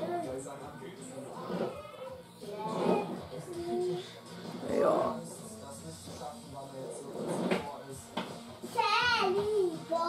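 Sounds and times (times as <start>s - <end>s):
television voices: 0.0s - 10.0s.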